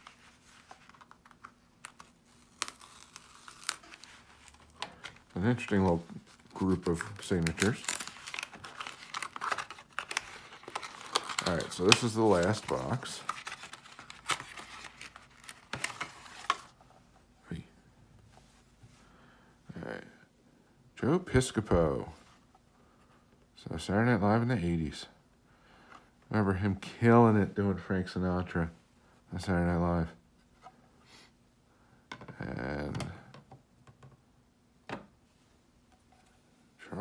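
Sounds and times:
cardboard handling: 0:00.0 - 0:16.8.

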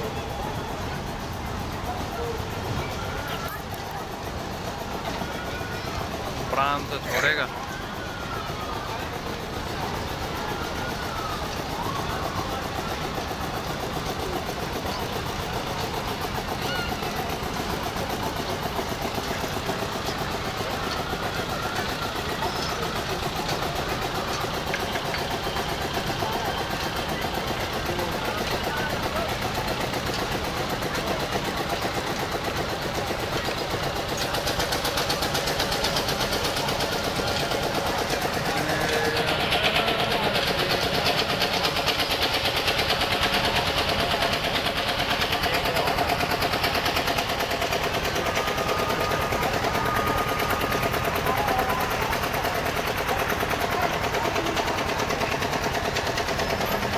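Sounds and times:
crowd voices: 0:00.0 - 0:56.9
running machinery: 0:00.0 - 0:56.9.

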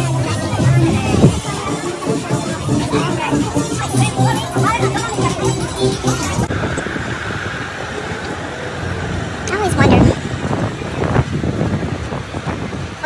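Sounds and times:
buses idling: 0:00.0 - 0:13.0
people's voices: 0:00.0 - 0:13.0.

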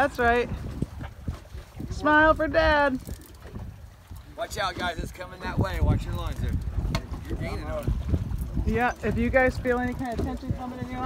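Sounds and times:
wind buffeting microphone: 0:00.0 - 0:11.0
people talking: 0:08.7 - 0:11.0.

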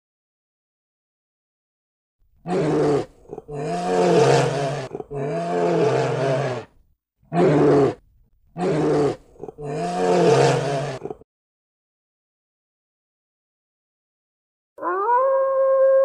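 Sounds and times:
bear roaring: 0:02.5 - 0:08.0, 0:08.6 - 0:11.2.

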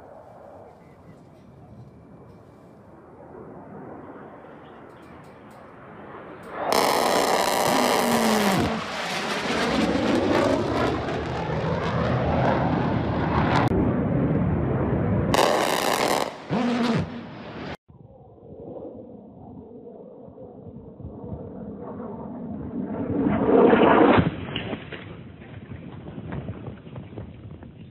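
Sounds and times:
jet engine roar: 0:00.0 - 0:17.8, 0:18.6 - 0:24.6.

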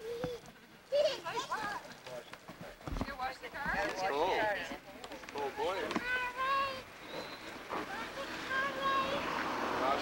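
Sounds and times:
toddlers babbling: 0:00.0 - 0:01.8, 0:06.0 - 0:06.9, 0:07.8 - 0:09.3.

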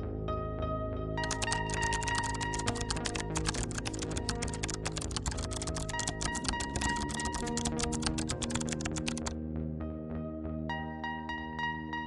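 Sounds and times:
computer keyboard typing: 0:01.2 - 0:09.3.

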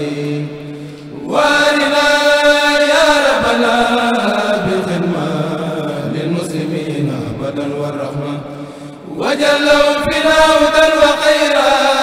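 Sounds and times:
men chanting: 0:00.0 - 0:12.0.

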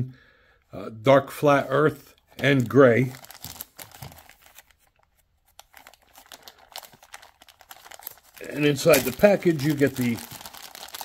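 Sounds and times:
plastic bag crinkling: 0:02.4 - 0:11.0.

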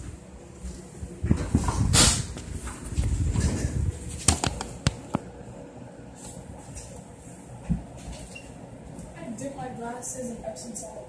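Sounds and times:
camera handling bumps and rustling: 0:04.2 - 0:05.3.

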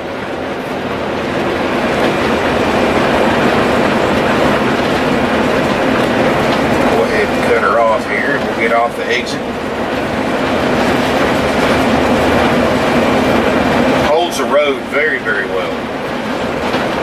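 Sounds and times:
road and engine rumble: 0:00.0 - 0:17.0
man speaking: 0:06.9 - 0:09.5, 0:14.0 - 0:15.8.

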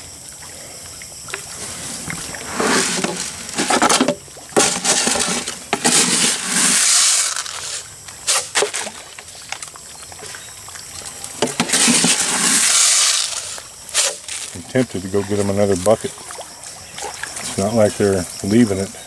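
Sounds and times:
water splashing and sloshing: 0:00.0 - 0:19.0.

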